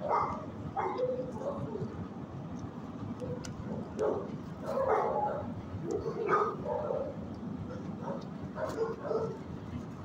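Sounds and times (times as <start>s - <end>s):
dogs barking and yipping: 0.0s - 1.9s, 3.2s - 9.5s.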